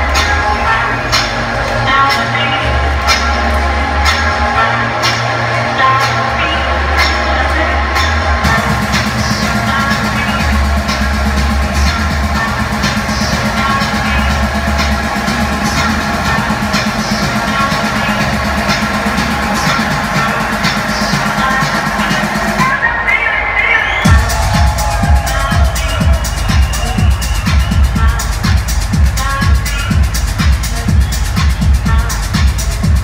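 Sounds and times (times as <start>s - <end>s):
heavy bass line: 0.0s - 23.0s, 24.0s - 33.0s
techno over club sound system: 0.0s - 33.0s.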